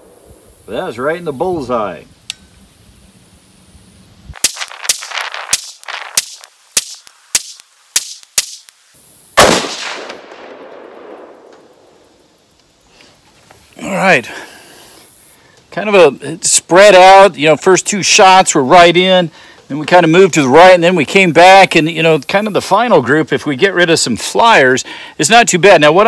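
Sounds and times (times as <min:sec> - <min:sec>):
rifle gunshots: 0:09.4 - 0:11.8
loud rifle shot with rolling echo: 0:09.4 - 0:12.0.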